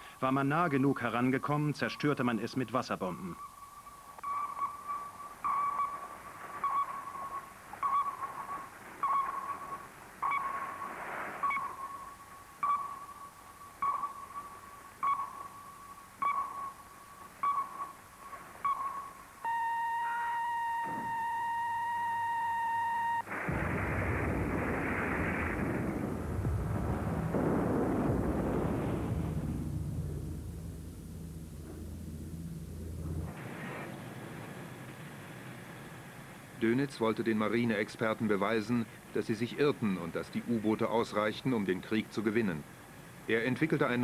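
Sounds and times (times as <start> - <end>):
steady held sonar tone: 0.7 - 24.8, 25.4 - 36.4
sonar pings: 3.0 - 23.2
depth charges exploding: 23.2 - 34.9.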